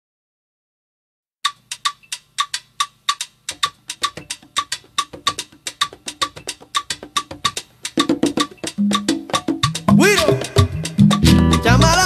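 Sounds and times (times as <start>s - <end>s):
wood-block rhythm: 1.4s - 12.0s
latin dance music: 4.0s - 12.0s
low drums: 7.5s - 12.0s.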